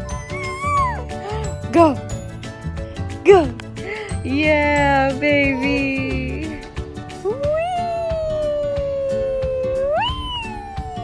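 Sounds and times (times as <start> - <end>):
baby squealing: 0.0 - 1.5, 5.4 - 6.2, 9.8 - 11.0.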